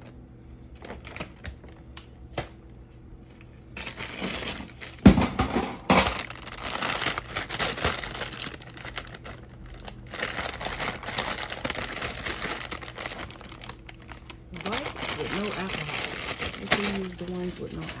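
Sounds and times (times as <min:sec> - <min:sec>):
paper towel crinkling: 0:05.9 - 0:18.0.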